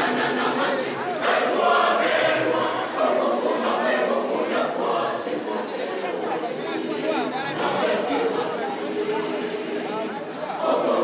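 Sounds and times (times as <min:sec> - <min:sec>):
choir singing sustained notes: 0:00.0 - 0:11.0.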